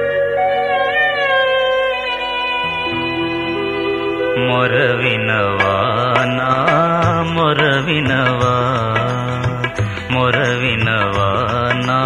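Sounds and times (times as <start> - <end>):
ornamented melody with wavering pitch: 0.0 - 7.2
sustained chord: 0.0 - 7.9.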